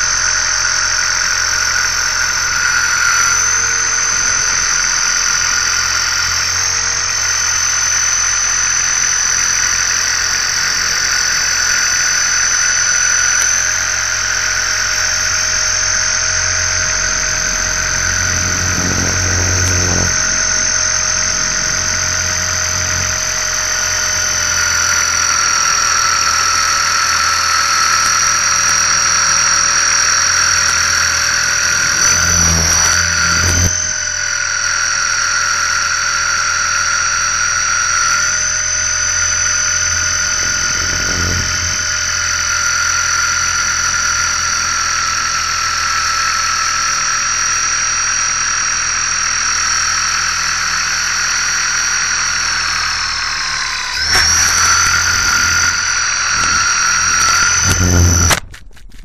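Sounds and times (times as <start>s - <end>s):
model helicopter motor whining: 0.0s - 59.0s.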